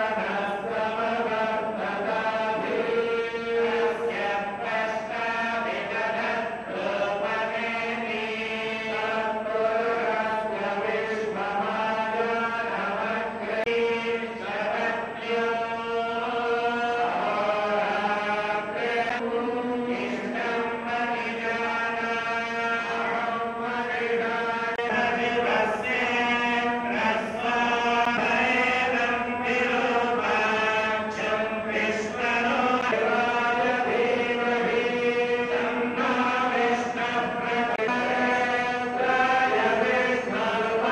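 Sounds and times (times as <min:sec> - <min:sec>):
group chanting mantras: 0:00.0 - 0:40.9.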